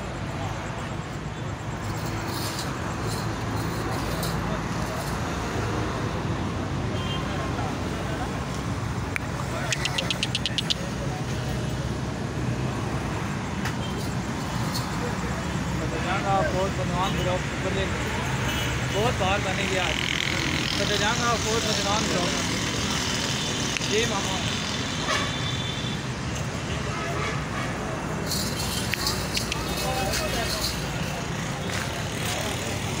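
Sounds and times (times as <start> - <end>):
low rumble of traffic: 0.0 - 33.0
steady background noise: 0.0 - 33.0.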